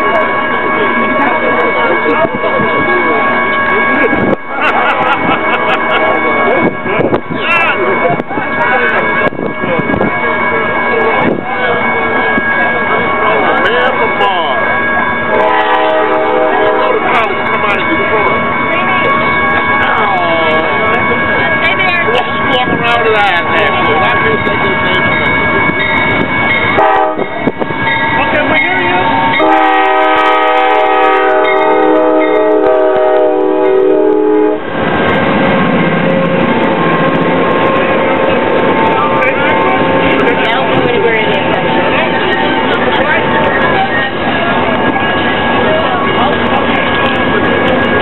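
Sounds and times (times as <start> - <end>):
people talking: 0.0 - 25.9, 27.2 - 29.4, 37.6 - 48.0
train horn chord: 15.2 - 17.0, 26.7 - 27.3, 29.2 - 34.7.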